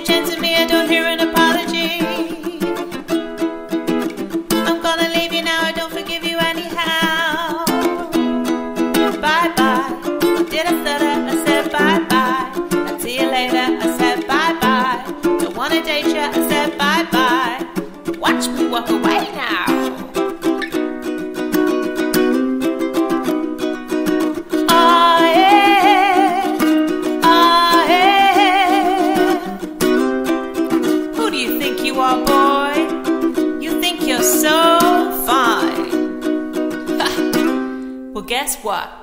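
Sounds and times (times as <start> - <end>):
woman singing: 0.0 - 3.0, 4.5 - 20.3, 24.5 - 30.0, 31.0 - 36.1
ukulele strumming: 0.0 - 38.8.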